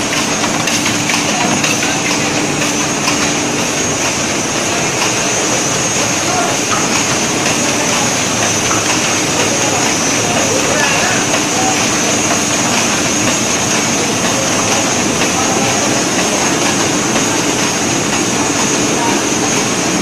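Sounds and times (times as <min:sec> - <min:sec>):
machine hum: 0:00.0 - 0:20.0
printing press clatter: 0:00.0 - 0:20.0.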